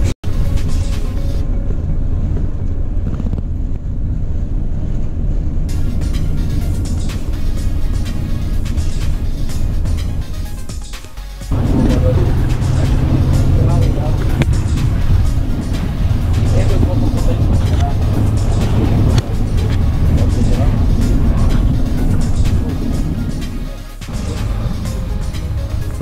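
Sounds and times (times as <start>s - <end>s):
background music: 0.0s - 3.3s, 5.7s - 26.0s.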